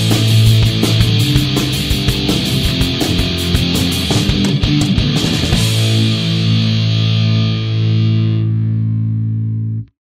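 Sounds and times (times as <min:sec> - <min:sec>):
distorted electric guitar chord: 0:00.0 - 0:09.9.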